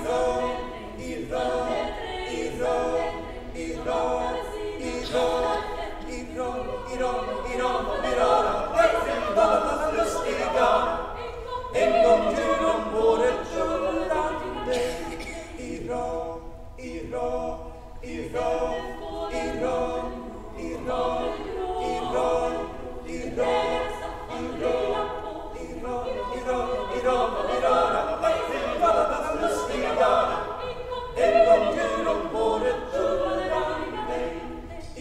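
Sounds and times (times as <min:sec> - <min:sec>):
girls' choir singing: 0:00.0 - 0:35.0.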